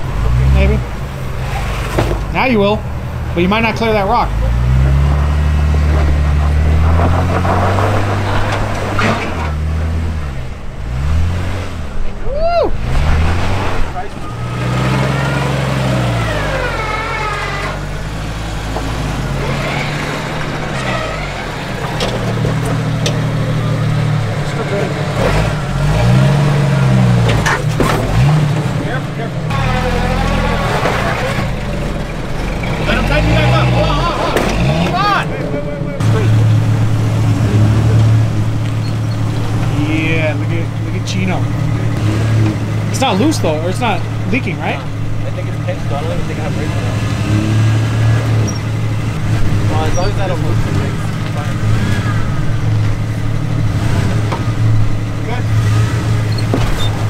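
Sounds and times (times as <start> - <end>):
indistinct voices: 0.0 - 57.0
off-road engines revving: 0.0 - 57.0.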